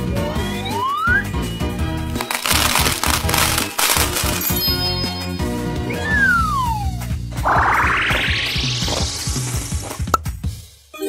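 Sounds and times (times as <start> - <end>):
background music: 0.0 - 11.0
small balls clattering into blender jar: 2.1 - 4.9.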